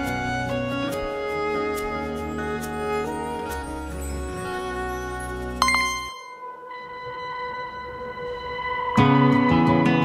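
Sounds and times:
keyboard accompaniment: 0:00.0 - 0:10.0.

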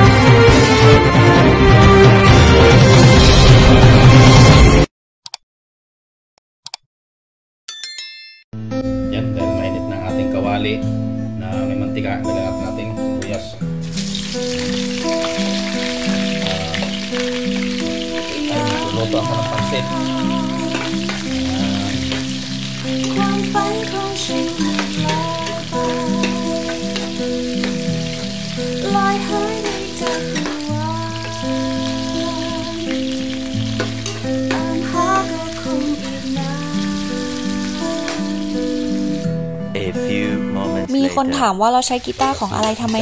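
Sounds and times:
background music: 0:00.0 - 0:04.9, 0:08.6 - 0:43.0
onions sizzling in oil: 0:13.8 - 0:39.2, 0:41.8 - 0:43.0
metal spoon stirring: 0:20.6 - 0:28.3, 0:42.0 - 0:43.0.

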